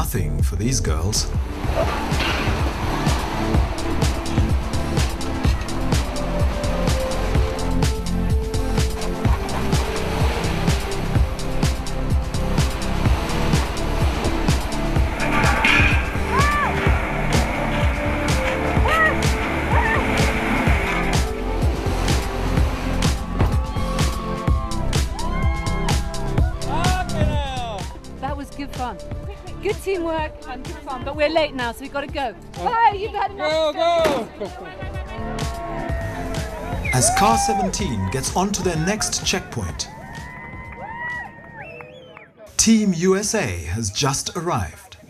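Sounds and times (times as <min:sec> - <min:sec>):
background music with beat: 0:00.0 - 0:41.6
car engine running: 0:01.4 - 0:23.8.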